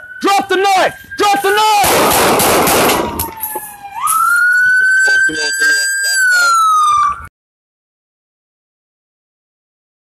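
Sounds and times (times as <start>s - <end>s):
police siren wailing: 0.0s - 7.3s.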